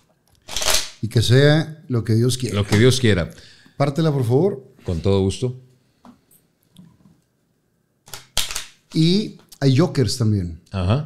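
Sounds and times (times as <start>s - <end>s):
playing cards riffle shuffling: 0.5s - 0.9s.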